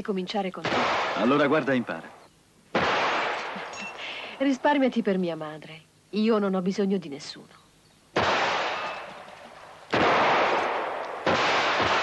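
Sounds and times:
handgun shots with echo: 9.9s - 12.0s.

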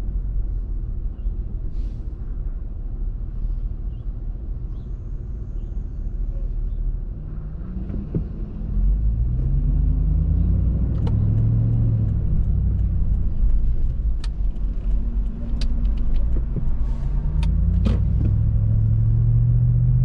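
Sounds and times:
car engine and road rumble: 0.0s - 20.0s
light ticks: 10.9s - 16.7s.

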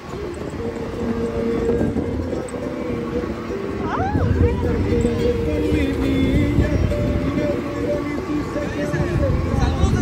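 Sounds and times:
vehicle engine drone: 0.0s - 10.0s
wind noise: 0.0s - 10.0s.

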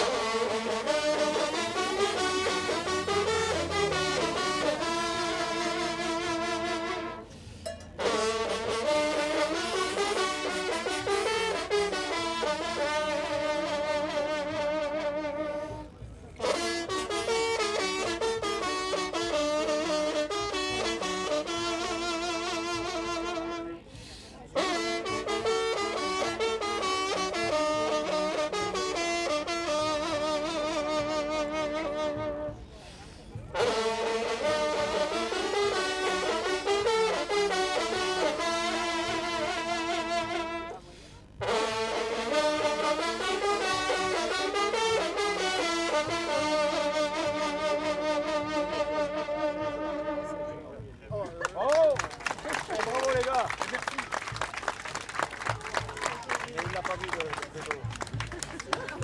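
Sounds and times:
hunting horns playing a fanfare: 0.0s - 51.2s.

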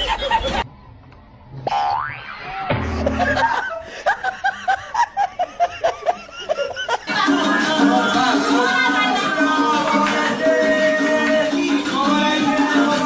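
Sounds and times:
rhythmic laughter: 0.0s - 0.6s, 2.4s - 13.0s
cartoon boing: 1.7s - 3.4s.

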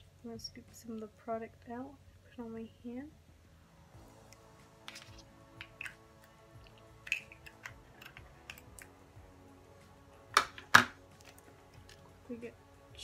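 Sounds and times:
faint background music: 0.0s - 13.0s
glass jar and brush clicking: 4.9s - 6.0s, 6.6s - 8.9s.

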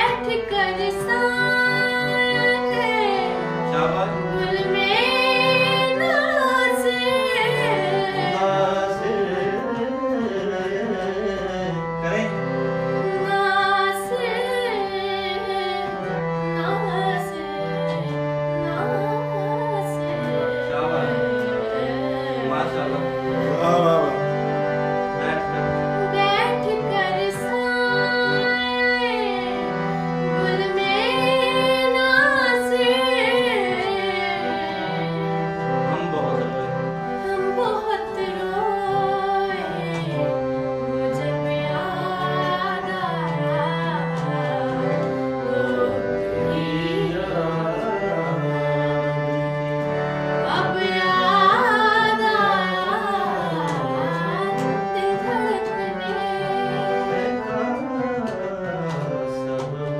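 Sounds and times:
woman singing: 0.0s - 3.5s, 4.3s - 8.7s, 13.0s - 20.7s, 21.4s - 22.6s, 26.0s - 29.7s, 30.4s - 35.4s, 37.2s - 48.2s, 50.4s - 57.3s
sustained instrumental accompaniment: 0.0s - 59.9s.

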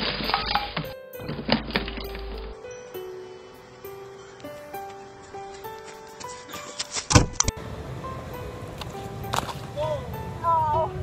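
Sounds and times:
loud thump near microphone: 7.1s - 7.4s.

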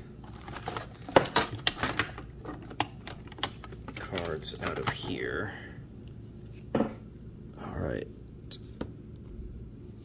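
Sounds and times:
trading cards clicking and crinkling: 0.2s - 5.2s.

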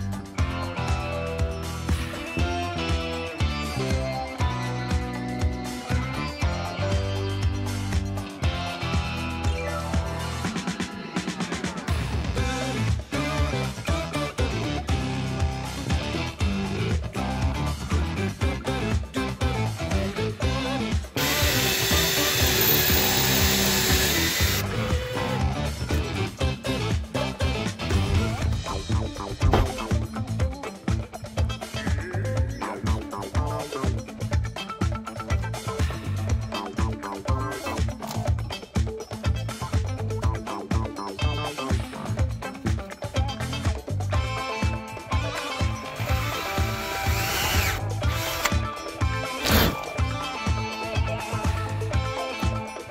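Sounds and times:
background music: 0.0s - 52.9s
power drill driving screw into wood: 21.2s - 24.9s, 46.0s - 48.7s, 49.4s - 49.9s.

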